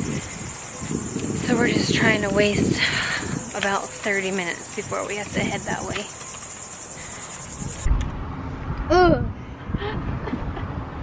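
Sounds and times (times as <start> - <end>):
high-pitched insect chorus: 0.0 - 7.9.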